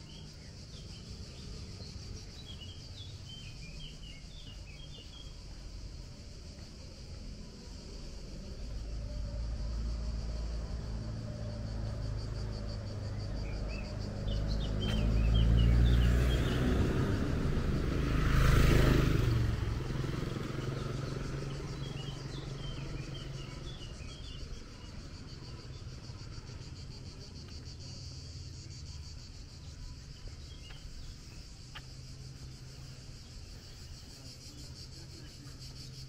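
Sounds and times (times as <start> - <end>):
insect chirps: 0.0 - 36.0
insects buzzing: 0.0 - 36.0
car passing: 7.7 - 36.0
motor scooter passing: 8.3 - 27.2.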